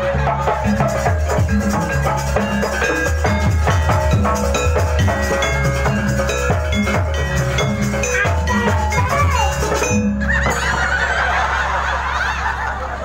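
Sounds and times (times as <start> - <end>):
crowd calling and shouting: 0.0 - 13.0
drums: 0.0 - 13.0
gamelan ensemble playing: 0.0 - 13.0.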